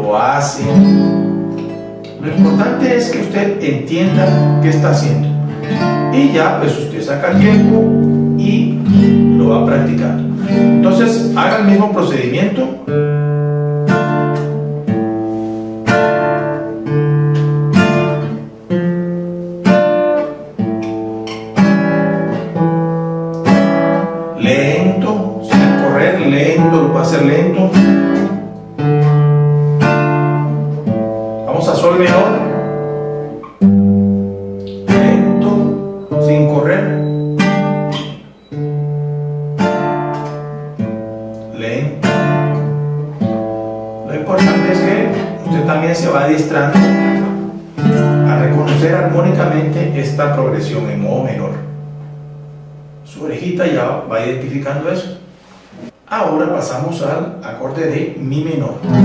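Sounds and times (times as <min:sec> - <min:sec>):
classical guitar strummed chords: 0:00.0 - 0:59.0.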